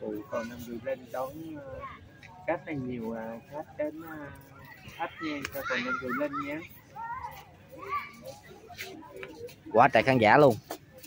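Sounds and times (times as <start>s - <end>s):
low outdoor murmur: 0.0s - 11.0s.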